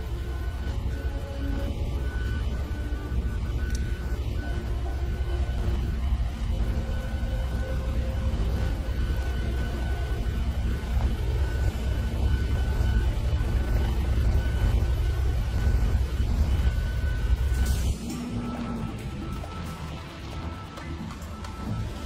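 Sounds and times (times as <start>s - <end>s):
faint high whine: 0.0s - 22.0s
helicopter engine rumble: 0.0s - 22.0s.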